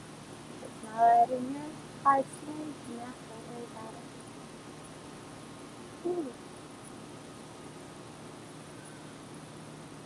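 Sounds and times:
faint low hum: 0:00.0 - 0:10.0
light hiss: 0:00.0 - 0:10.0
person speaking softly: 0:00.6 - 0:04.1, 0:06.0 - 0:06.4.

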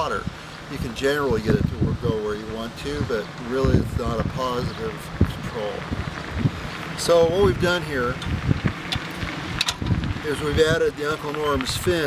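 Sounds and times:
low rumble: 0:01.5 - 0:10.9.

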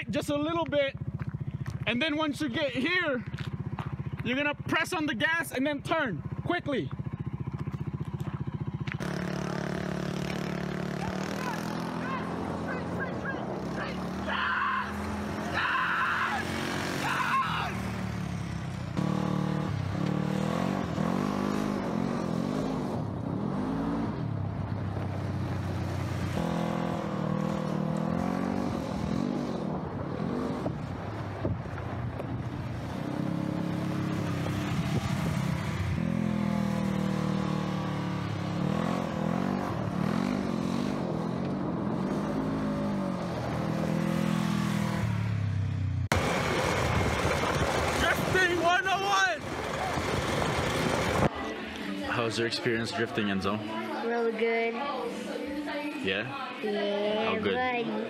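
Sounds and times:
utility vehicle engine revving: 0:06.4 - 0:51.5.

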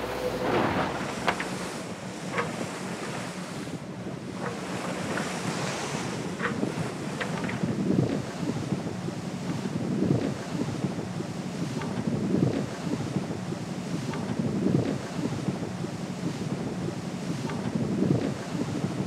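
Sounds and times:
rushing water: 0:00.0 - 0:07.2
steady low hum: 0:00.0 - 0:19.0
wind: 0:00.0 - 0:19.0.

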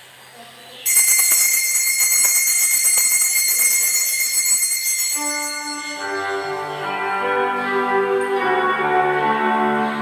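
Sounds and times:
hand bells ringing: 0:00.9 - 0:07.3.

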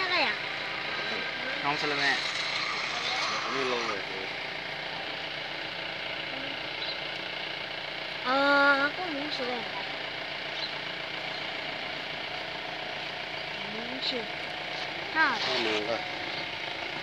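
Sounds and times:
steady background drone: 0:00.0 - 0:05.3.

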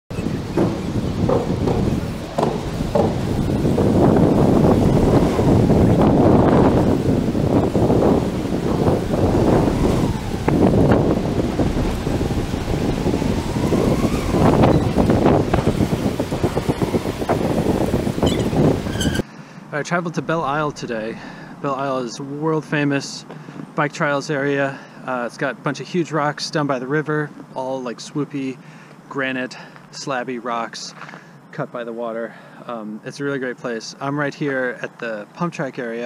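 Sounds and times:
knocks and rattles: 0:00.1 - 0:19.2
wind buffeting microphone: 0:00.1 - 0:19.2, 0:20.2 - 0:21.6.

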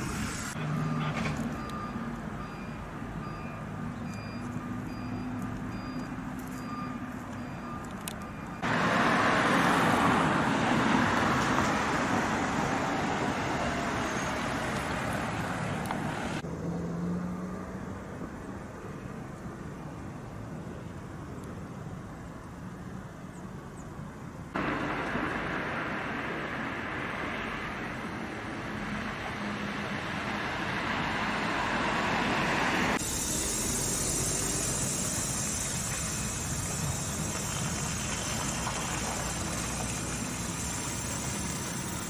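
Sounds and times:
reversing alarm beeping: 0:00.6 - 0:08.7
engine hum: 0:24.5 - 0:42.0
loud steady hiss: 0:32.9 - 0:42.0.

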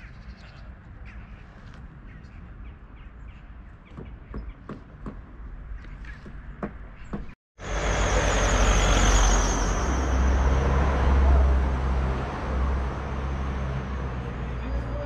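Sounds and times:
traffic rumble: 0:00.3 - 0:15.0
wavering high whine: 0:07.6 - 0:11.8.

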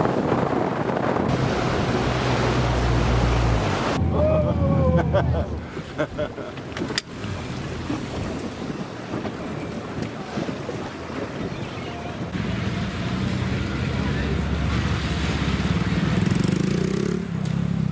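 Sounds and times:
water noise: 0:00.0 - 0:17.2
wind: 0:00.0 - 0:17.9
outboard engine running: 0:00.4 - 0:04.4.

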